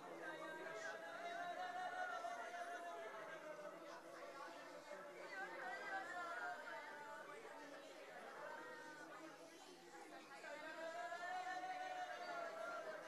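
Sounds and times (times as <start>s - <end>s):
chatter of many people: 0.0s - 13.0s.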